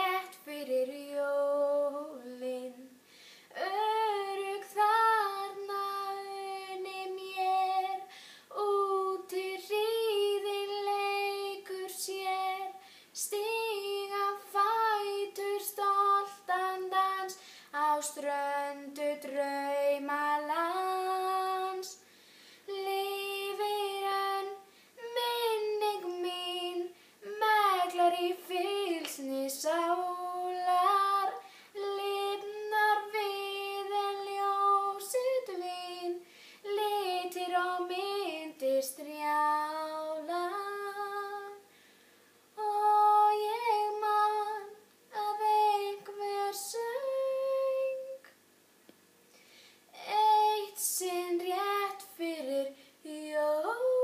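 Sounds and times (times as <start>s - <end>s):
girl singing: 0.0s - 41.7s, 42.6s - 48.4s, 49.9s - 54.0s
quick breath: 3.0s - 3.5s, 22.1s - 22.7s, 49.3s - 49.9s.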